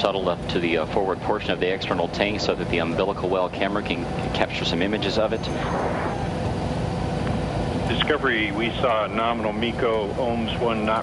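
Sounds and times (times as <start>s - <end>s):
low steady rushing noise: 4.9s - 10.6s.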